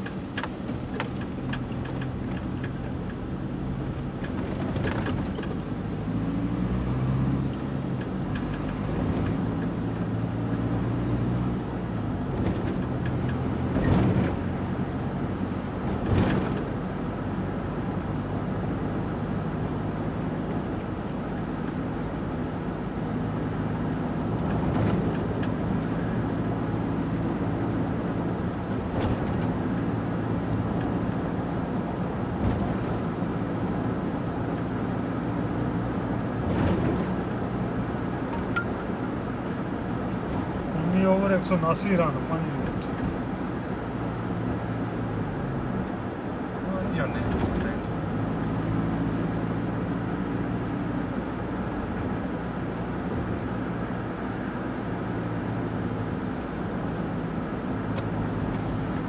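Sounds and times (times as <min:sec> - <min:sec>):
car engine hum: 0:00.0 - 0:59.0
road noise: 0:00.0 - 0:59.0.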